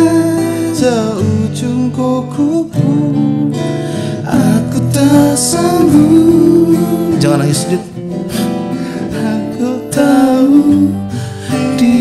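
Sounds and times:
men singing: 0.0 - 7.9, 9.0 - 12.0
acoustic guitars strumming: 0.0 - 12.0.

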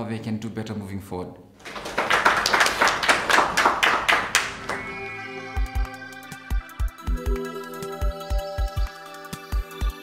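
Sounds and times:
audience applauding: 1.6 - 6.1.

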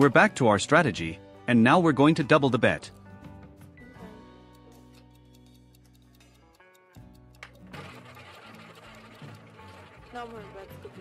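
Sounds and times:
background music with low notes: 0.0 - 11.0
roulette ball rattling around wheel: 7.4 - 11.0.

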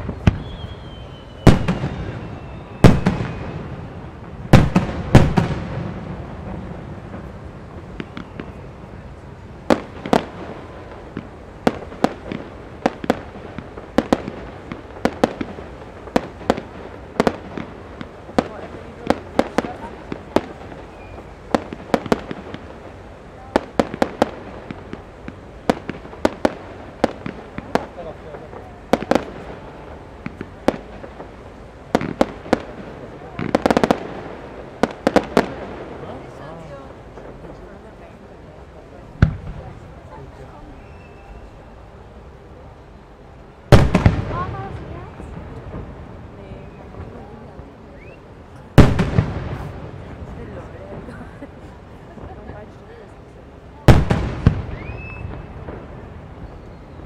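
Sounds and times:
firework booms: 0.0 - 42.0, 43.6 - 53.0, 53.6 - 57.0
sharp firework reports: 0.0 - 57.0.

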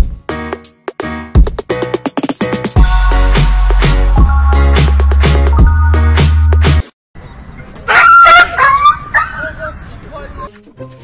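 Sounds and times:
dog barking: 7.9 - 9.8.

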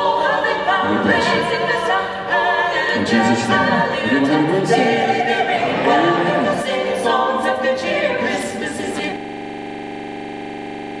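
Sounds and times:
choir singing unaccompanied: 0.0 - 9.2
steady drone: 0.1 - 11.0.

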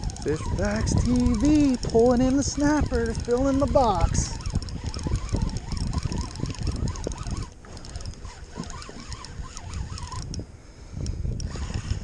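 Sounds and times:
fishing reel whirring: 0.0 - 10.4, 11.0 - 12.0
wind on microphone: 0.0 - 12.0.

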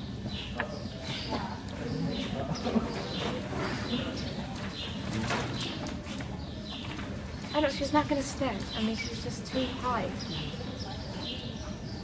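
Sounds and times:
birds chirping: 0.0 - 12.0
chatter of onlookers: 0.0 - 12.0.

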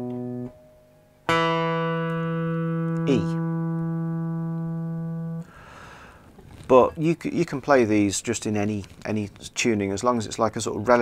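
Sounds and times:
electric guitar string plucked: 0.0 - 5.5
person speaking: 3.0 - 3.5, 6.5 - 11.0.

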